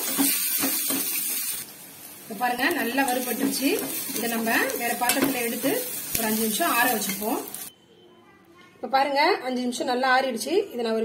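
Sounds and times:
spices sizzling in oil: 0:00.0 - 0:07.7.

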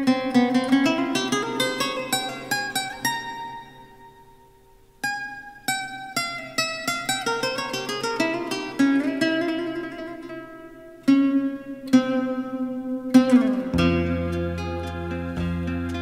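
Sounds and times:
plucked string instrument notes: 0:00.0 - 0:16.0.

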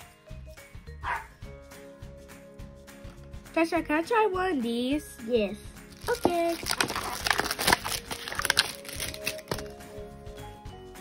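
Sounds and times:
background music: 0:00.0 - 0:11.0
plastic tray crackling: 0:05.9 - 0:09.8.

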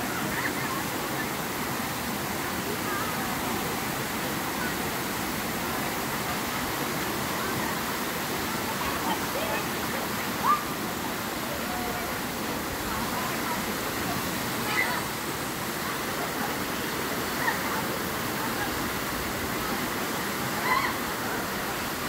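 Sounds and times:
distant shouts and voices: 0:07.4 - 0:22.0.

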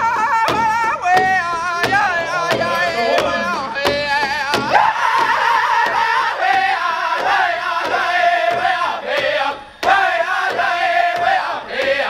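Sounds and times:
high-pitched voices singing: 0:00.0 - 0:12.0
large drum steady beat: 0:00.0 - 0:12.0.

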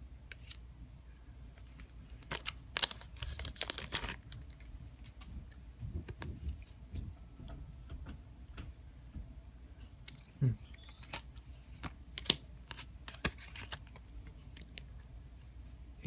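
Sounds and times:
cards being handled: 0:00.3 - 0:00.7, 0:01.5 - 0:05.3, 0:10.0 - 0:14.9
foil wrapper crinkling and tearing: 0:02.2 - 0:04.7.

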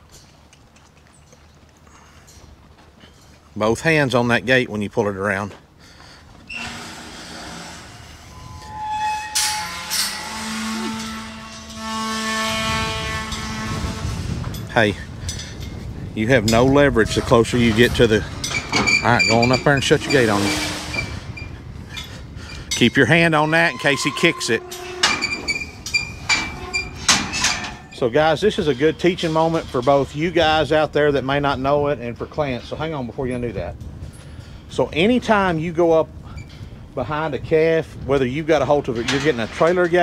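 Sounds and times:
metal gate clanks: 0:06.5 - 0:30.4, 0:38.6 - 0:40.0
metallic ringing: 0:07.3 - 0:15.8, 0:22.7 - 0:29.3
latch rattling and clinking: 0:16.4 - 0:23.1, 0:23.8 - 0:28.0, 0:38.7 - 0:40.0.

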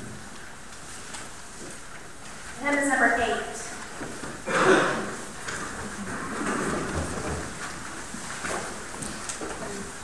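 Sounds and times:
hymnal pages rustling: 0:00.0 - 0:10.0.

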